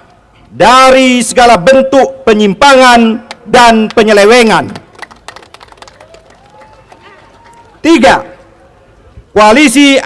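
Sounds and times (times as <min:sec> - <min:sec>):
man speaking into a microphone: 0:00.5 - 0:04.8, 0:07.8 - 0:08.4, 0:09.3 - 0:10.0.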